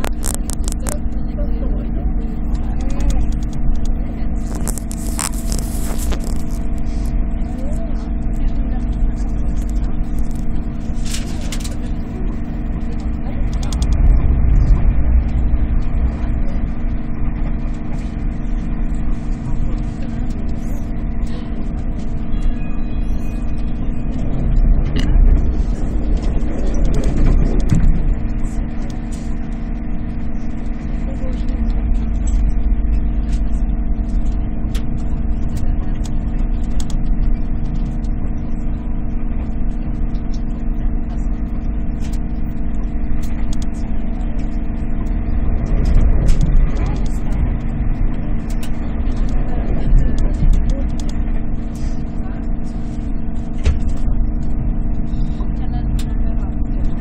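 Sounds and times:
constant hum tones: 0:00.0 - 0:57.0
train interior rumble: 0:00.0 - 0:57.0.

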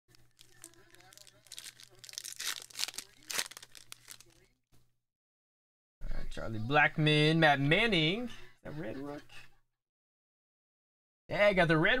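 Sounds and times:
wrapper tearing and crinkling: 0:00.1 - 0:04.5.

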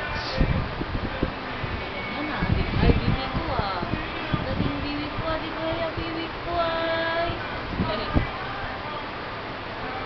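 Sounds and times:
high voice holding sung notes: 0:02.1 - 0:08.8.

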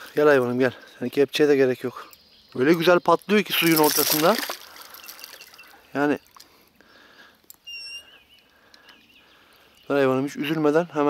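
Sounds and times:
bird whistle and twitter: 0:02.0 - 0:06.4, 0:07.6 - 0:10.1.

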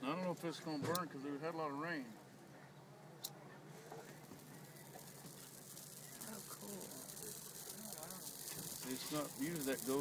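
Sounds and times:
faint flame hiss: 0:00.1 - 0:10.0.

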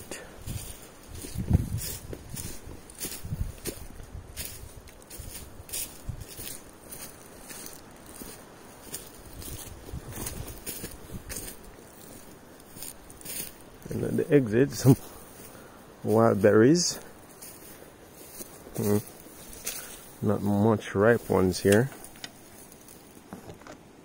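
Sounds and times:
footsteps in dry leaves: 0:00.0 - 0:23.3.

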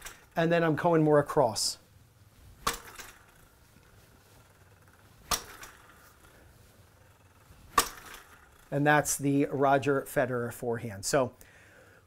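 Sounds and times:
racket strings hitting tennis ball: 0:02.6 - 0:03.4, 0:05.0 - 0:06.4, 0:07.7 - 0:08.5.

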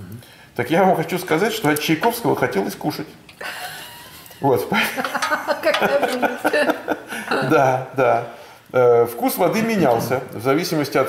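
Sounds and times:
people chuckling: 0:03.4 - 0:07.8.

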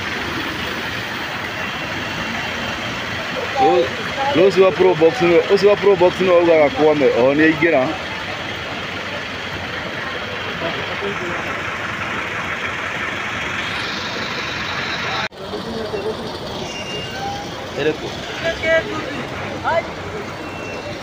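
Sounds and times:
vehicles moving through water: 0:00.0 - 0:21.0
faint voices: 0:03.1 - 0:12.6, 0:14.2 - 0:21.0.

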